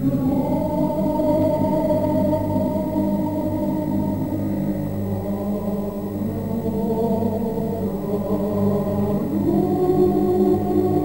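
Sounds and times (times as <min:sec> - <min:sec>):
choir holding wordless chords: 0:00.0 - 0:11.0.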